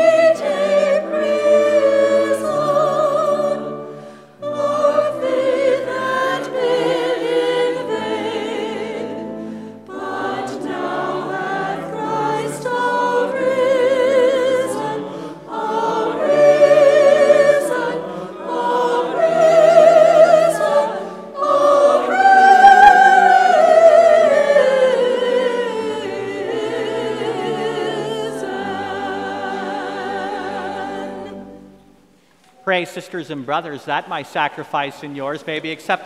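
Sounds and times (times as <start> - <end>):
choir singing a hymn: 0.0 - 32.0.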